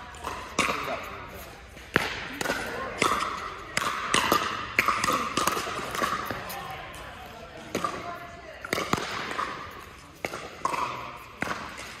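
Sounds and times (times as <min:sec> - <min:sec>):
ball bouncing on court: 0:00.0 - 0:12.0.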